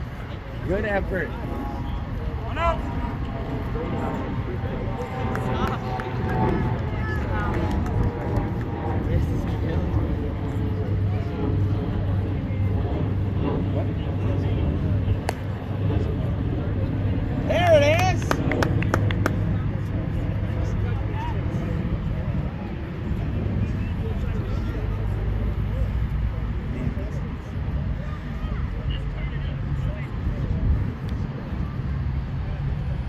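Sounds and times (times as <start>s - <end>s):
distant voices: 0.0s - 33.0s
people clapping: 5.0s - 8.8s, 17.5s - 19.6s.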